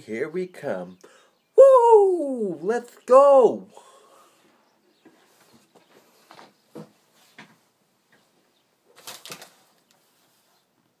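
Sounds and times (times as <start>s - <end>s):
knocks and rustles of movement: 4.8s - 11.0s.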